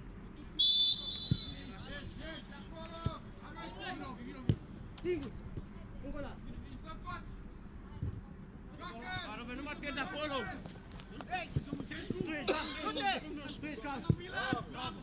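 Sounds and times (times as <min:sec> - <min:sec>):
referee's whistle blast: 0:00.6 - 0:01.7
players shouting: 0:08.8 - 0:15.0.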